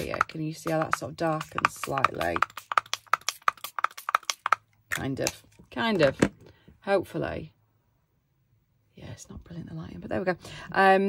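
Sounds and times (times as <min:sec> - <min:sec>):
trigger spray bottle spritzing: 0:00.0 - 0:06.1.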